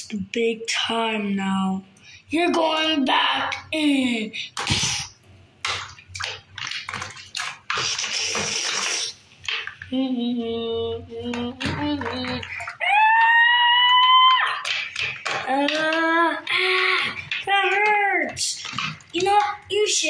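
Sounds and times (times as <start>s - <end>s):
water splashing in sink: 4.4s - 10.5s, 11.2s - 20.0s.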